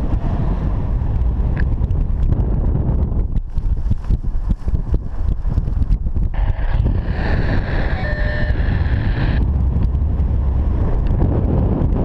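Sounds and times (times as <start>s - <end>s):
wind buffeting microphone: 0.0s - 12.0s
bright wind hiss: 3.6s - 9.7s.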